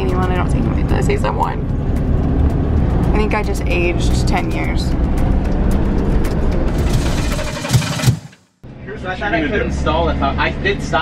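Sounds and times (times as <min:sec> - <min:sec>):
vehicle engine hum with road noise: 0:00.0 - 0:11.0.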